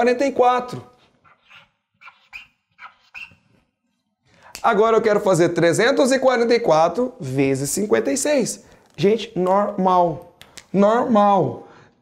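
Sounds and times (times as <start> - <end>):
chalk squeaking on blackboard: 1.0 - 3.7.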